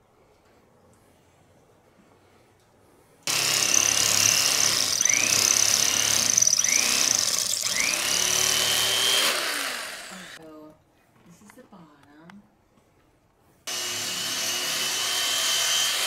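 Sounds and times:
electric carving knife whine: 3.3 - 10.4, 13.7 - 16.0.

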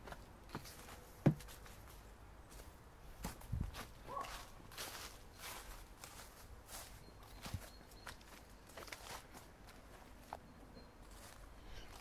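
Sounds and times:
footsteps on leaves and grass: 0.0 - 10.4, 11.0 - 12.0.

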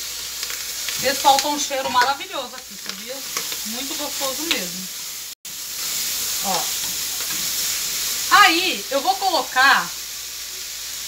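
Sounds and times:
meat sizzling in oil: 0.0 - 11.0
spoon stirring in pot: 0.8 - 4.7.

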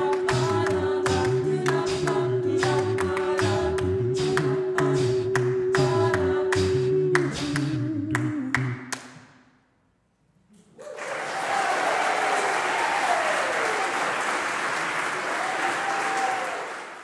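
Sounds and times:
audience applause: 10.8 - 17.0
voices cheering: 10.8 - 17.0.

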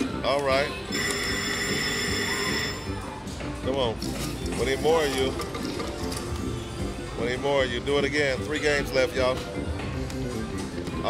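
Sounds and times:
electronic slot machine chime: 0.9 - 3.1.

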